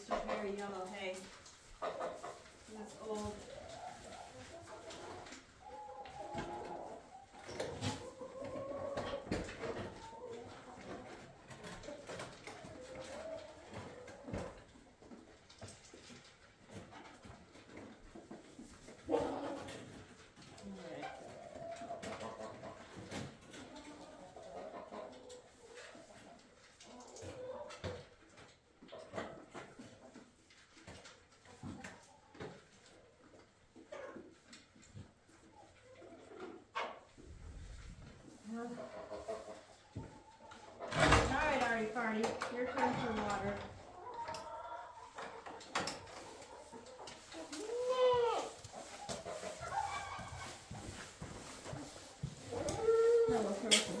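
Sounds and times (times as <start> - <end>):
rustling: 44.8 - 54.0.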